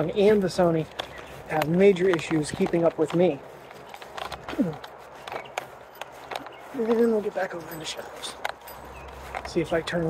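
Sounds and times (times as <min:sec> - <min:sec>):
footsteps outdoors: 0:00.0 - 0:10.0.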